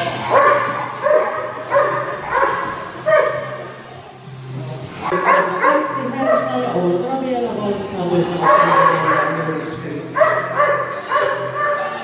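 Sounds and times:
dog barking: 0:00.3 - 0:03.6, 0:05.1 - 0:06.6, 0:08.4 - 0:09.4, 0:10.2 - 0:12.0.

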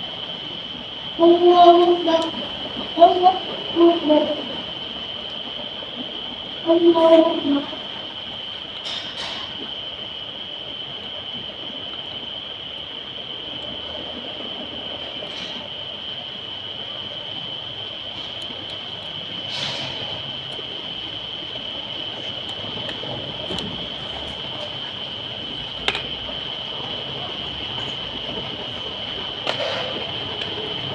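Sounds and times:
high-pitched whine: 0:00.0 - 0:30.9.

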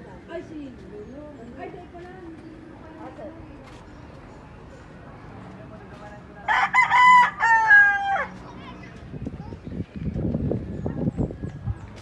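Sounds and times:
rooster crowing: 0:06.5 - 0:08.3.

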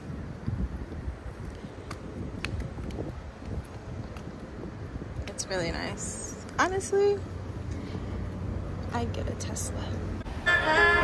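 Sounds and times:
wind buffeting microphone: 0:00.0 - 0:10.6.

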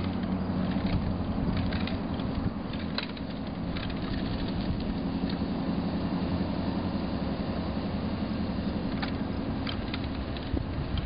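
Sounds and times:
car engine hum: 0:00.0 - 0:11.0
tyre and road noise: 0:00.0 - 0:11.0.

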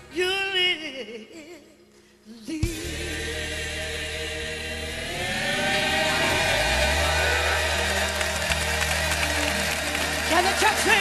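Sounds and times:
gospel band and choir chord: 0:02.6 - 0:11.0.

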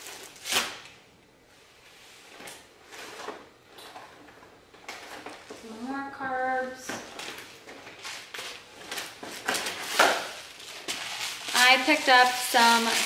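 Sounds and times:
cardboard and plastic packaging rustling: 0:00.0 - 0:00.9, 0:02.2 - 0:13.0.

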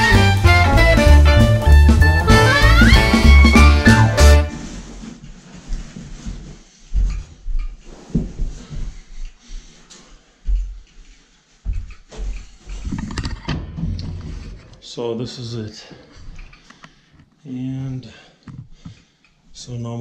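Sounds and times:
footsteps: 0:00.9 - 0:14.9, 0:15.9 - 0:16.8.

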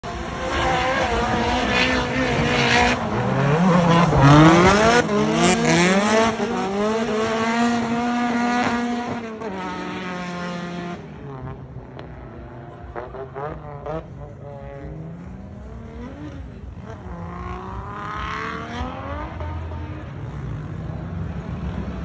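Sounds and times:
car engines revving: 0:00.0 - 0:22.0.

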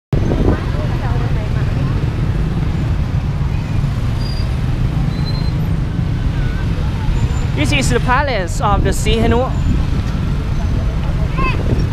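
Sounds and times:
motorbikes and cars passing: 0:00.2 - 0:11.9
voices: 0:00.2 - 0:11.9.

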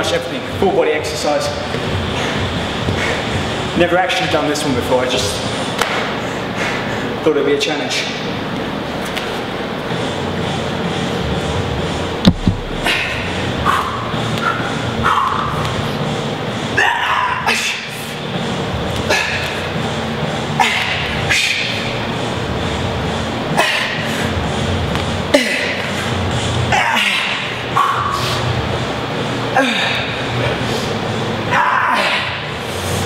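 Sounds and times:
man breathing hard and grunting: 0:02.0 - 0:03.6, 0:06.2 - 0:07.2, 0:12.6 - 0:15.6, 0:19.0 - 0:21.9, 0:23.5 - 0:24.4, 0:25.3 - 0:28.6, 0:29.5 - 0:31.1
sharp knock: 0:12.2 - 0:12.9.

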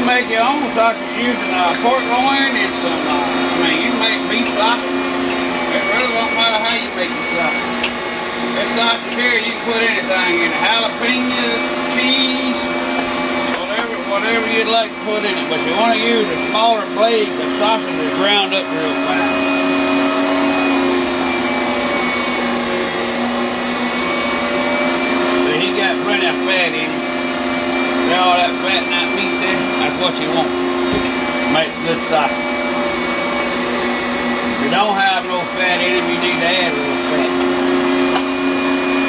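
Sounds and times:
meat grinder motor running: 0:00.0 - 0:39.0.

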